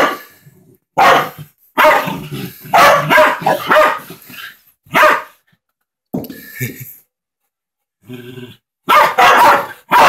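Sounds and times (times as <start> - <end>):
dog barking: 0.0 - 0.3, 1.0 - 4.2, 4.9 - 5.4, 8.8 - 10.0.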